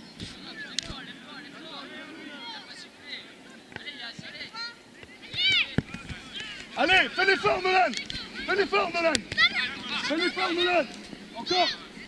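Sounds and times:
children calling and shouting: 0.3 - 12.0.

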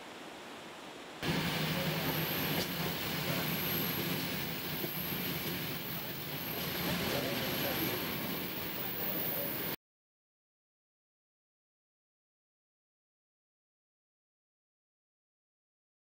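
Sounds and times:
train running inside carriage: 1.2 - 9.8.

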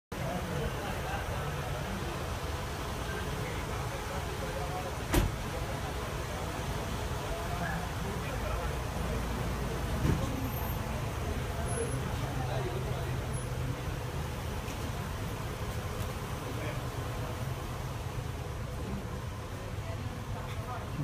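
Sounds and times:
vehicles driving slowly past: 0.2 - 21.0.

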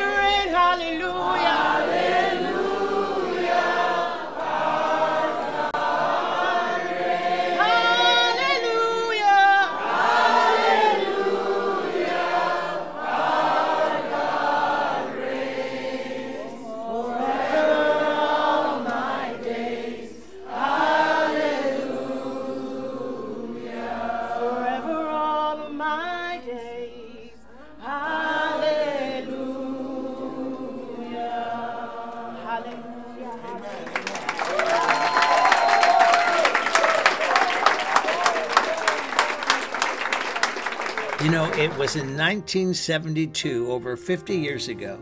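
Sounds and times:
group singing worship song: 0.0 - 34.8.

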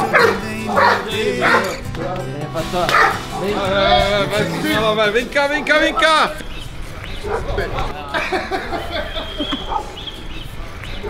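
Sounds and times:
dog barking: 0.0 - 1.8, 2.9 - 3.7, 5.5 - 6.4, 7.2 - 7.8, 9.4 - 10.2
background music: 0.0 - 11.0.

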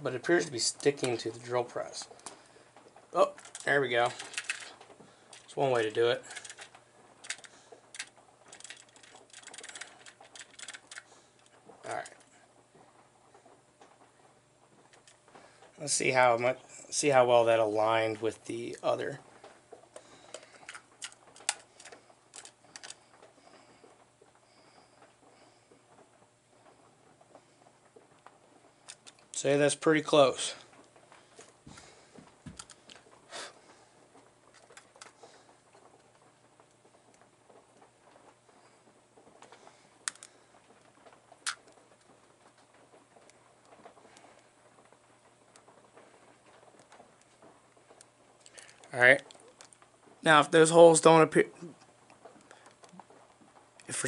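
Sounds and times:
low steady hum: 0.0 - 54.0
plastic parts clicking and rattling: 0.5 - 12.3, 14.8 - 15.4, 20.0 - 23.3, 28.2 - 29.5, 32.4 - 33.2, 34.1 - 37.3, 39.3 - 44.4, 45.5 - 49.8.

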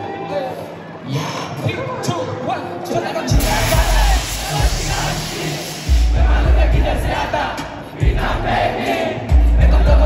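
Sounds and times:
concert crowd voices: 0.0 - 10.0
bass-heavy hip-hop beat: 3.3 - 10.0.

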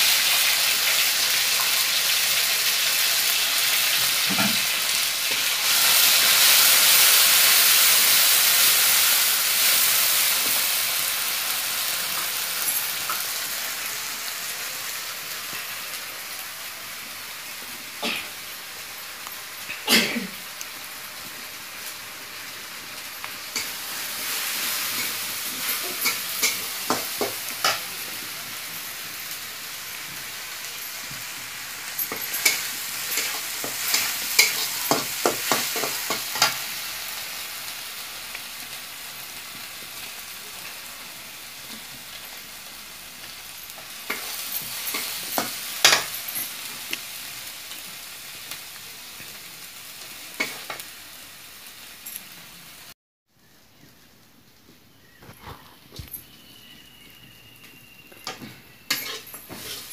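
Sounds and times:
food sizzling in oil: 0.0 - 54.1, 55.0 - 59.9
spatula scraping metal pan: 58.9 - 59.9.

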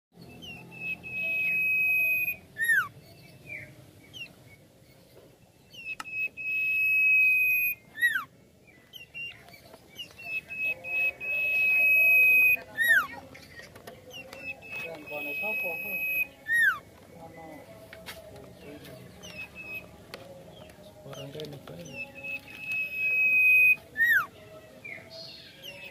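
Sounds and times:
bird whistling song: 0.2 - 13.3, 14.0 - 17.0, 18.9 - 25.9.

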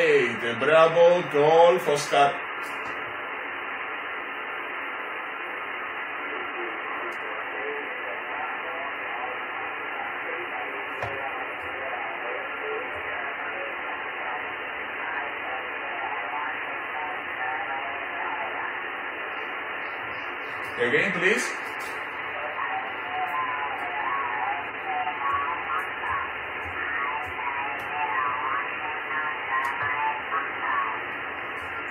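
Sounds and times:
faint garbled voices: 0.0 - 31.9
radio receiver hiss: 0.0 - 31.9.

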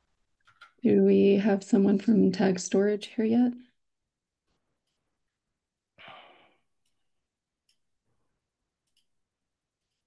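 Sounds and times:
person sighing: 6.0 - 6.6.

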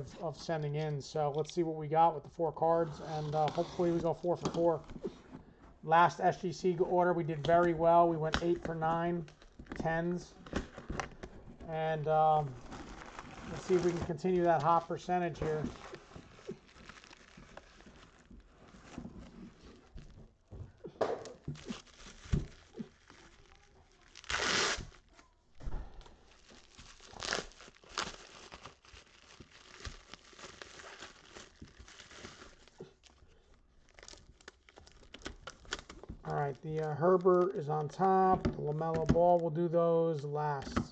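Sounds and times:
bubble wrap crinkling: 2.8 - 5.6, 6.3 - 38.1.

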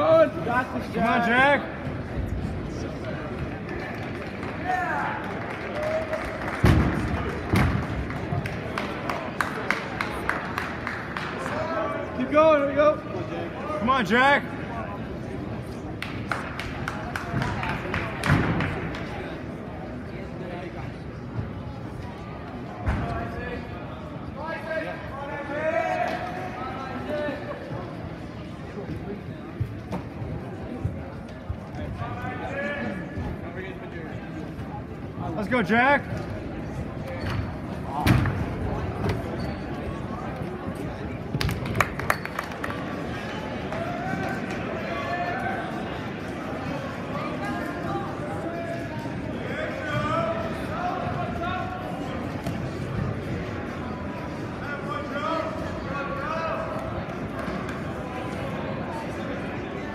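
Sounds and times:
gym crowd chatter: 0.0 - 59.9.

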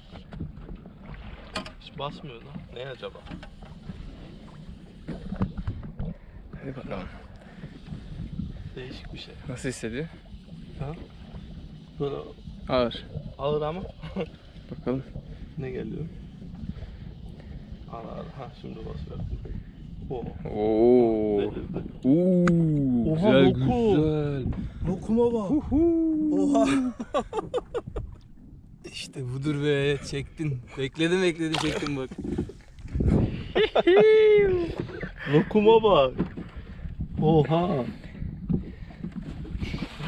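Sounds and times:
wind rumbling on microphone: 0.0 - 40.0
man laughing: 25.5 - 28.1, 33.4 - 35.5
fish splashing at water surface: 31.4 - 32.0.

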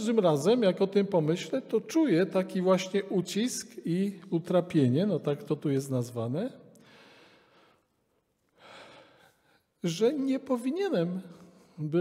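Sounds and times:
man speaking: 0.0 - 6.7, 9.8 - 12.0
man breathing in: 6.8 - 8.0, 8.6 - 9.7.

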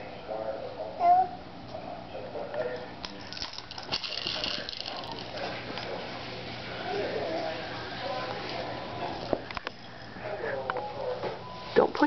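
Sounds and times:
child babbling: 1.0 - 1.4.

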